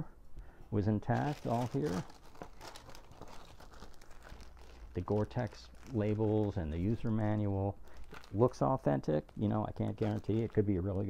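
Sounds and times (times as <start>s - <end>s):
tissue paper crinkling: 1.1s - 11.0s.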